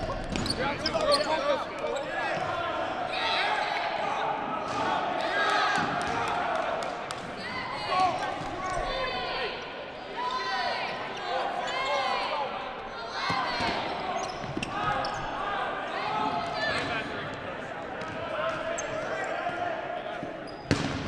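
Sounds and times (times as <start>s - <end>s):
sneakers squeaking: 0.0s - 2.6s, 13.2s - 15.6s, 18.0s - 21.0s
balls bouncing: 20.6s - 21.0s.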